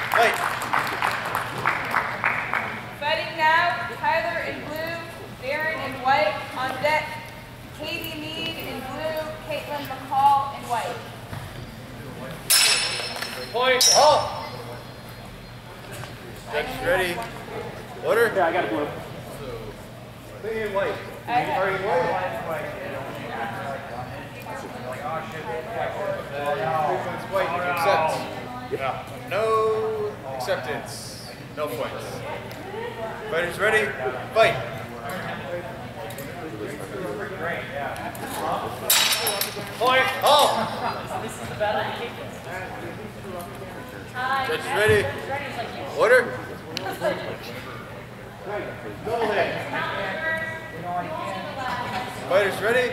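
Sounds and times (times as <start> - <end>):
low background talk in hall: 0.0 - 52.9
swords clashing with metallic ring: 12.5 - 14.5.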